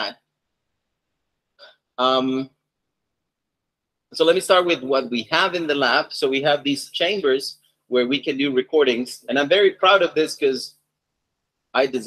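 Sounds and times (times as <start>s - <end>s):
man speaking: 2.0s - 2.5s, 4.2s - 10.7s, 11.8s - 12.0s.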